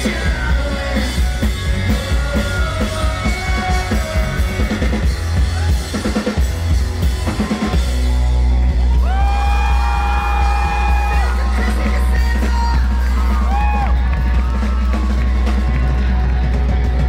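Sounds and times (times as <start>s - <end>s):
person singing: 0.0s - 5.1s
live rock band playing: 0.0s - 17.0s.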